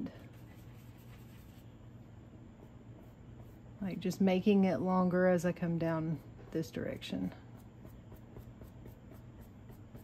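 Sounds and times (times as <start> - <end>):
steady low hum: 0.0 - 10.0
paintbrush scratching on canvas: 0.2 - 1.7.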